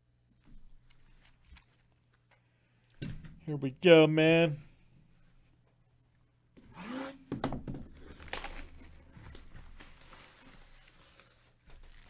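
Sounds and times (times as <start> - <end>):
plastic shrink wrap tearing: 7.9 - 12.0.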